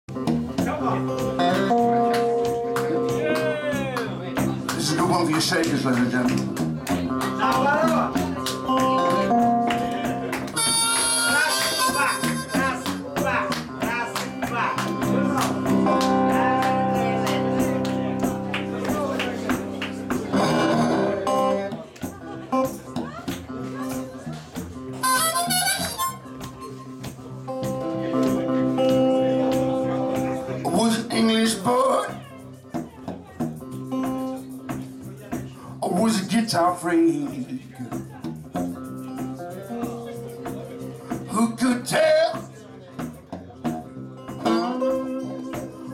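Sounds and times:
electric guitar blues riff: 0:00.1 - 0:45.9.

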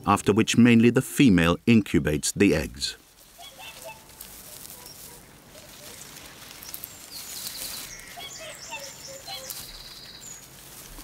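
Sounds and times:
faint outdoor background: 0:00.0 - 0:11.0
songbirds chirping and trilling: 0:00.0 - 0:11.0.

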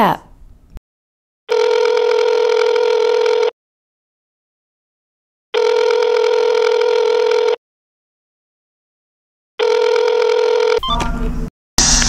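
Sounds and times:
telephone ringing two-tone: 0:01.5 - 0:03.5, 0:05.6 - 0:07.6, 0:09.6 - 0:11.0.

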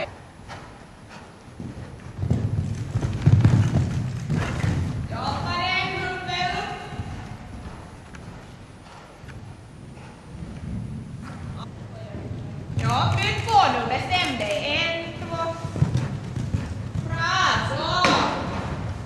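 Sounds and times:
horse hoofbeats on sand: 0:00.2 - 0:19.0.

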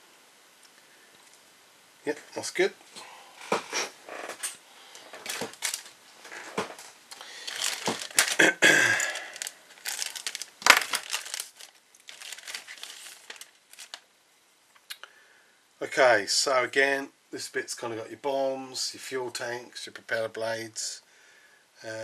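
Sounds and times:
plastic bag crinkling: 0:03.4 - 0:14.1.

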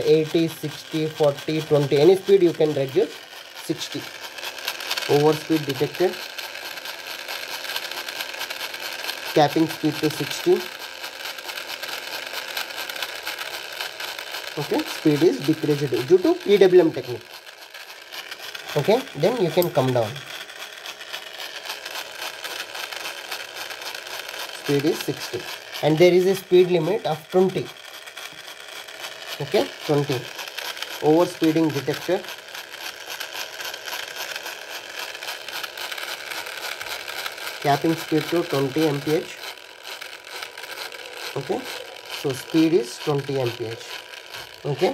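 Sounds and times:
small electric motor whining: 0:00.0 - 0:44.9.

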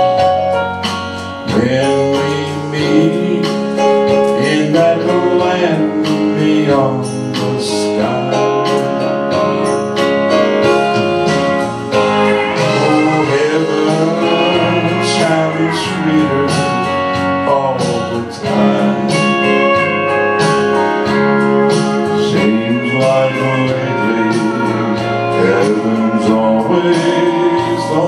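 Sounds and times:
instrumental accompaniment: 0:00.0 - 0:28.0
man singing gospel song: 0:01.4 - 0:09.1, 0:11.9 - 0:28.0.

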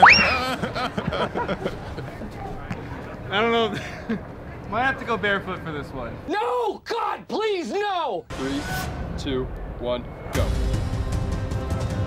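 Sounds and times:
person squealing: 0:00.0 - 0:00.5
person laughing: 0:00.1 - 0:01.7.

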